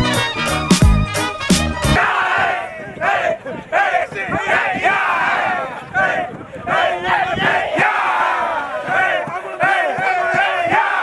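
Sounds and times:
rhythmic group shouts: 1.9 - 11.0
crowd of men shouting and chanting: 2.0 - 11.0.

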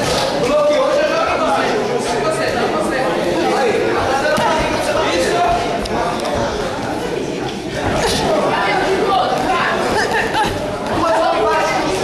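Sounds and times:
spectators chattering and calling out: 0.0 - 12.0.

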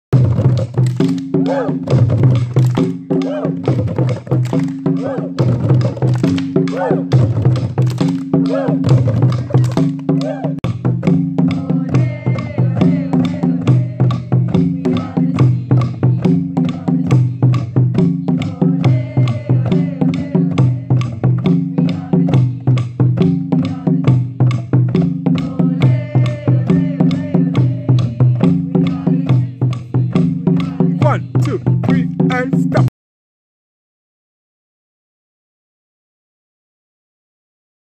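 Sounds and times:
djembe hand drums: 0.1 - 32.9.

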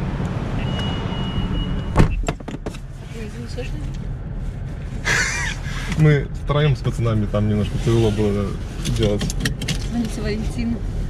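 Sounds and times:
truck idling hum: 5.0 - 6.0.

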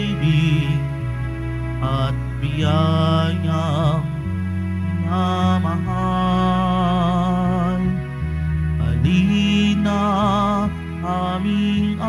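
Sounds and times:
person singing with vibrato: 0.0 - 12.0
sustained accompanying chords: 0.0 - 12.0.

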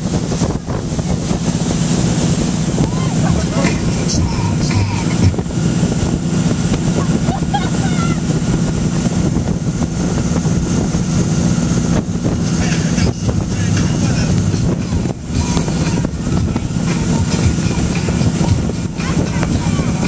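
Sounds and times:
motorboat engine running: 0.0 - 20.0
water rushing past: 0.0 - 20.0
wind buffeting microphone: 0.0 - 20.0.

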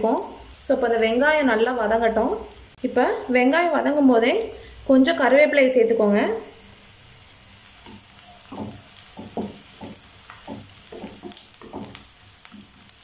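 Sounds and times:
onions sizzling in hot oil: 0.0 - 13.0.

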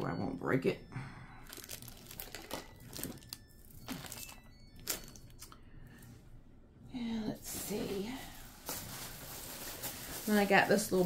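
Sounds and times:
rustling and crinkling of items: 1.4 - 6.2, 7.2 - 11.0.

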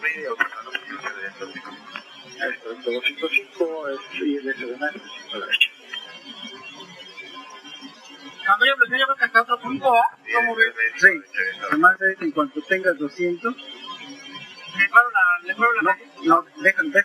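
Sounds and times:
cockpit background noise: 0.0 - 17.0
indistinct crew voices: 0.0 - 17.0.

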